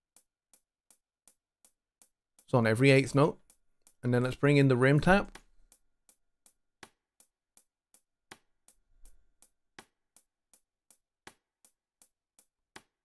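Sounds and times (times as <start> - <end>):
hi-hat ticking: 1.3 - 4.5.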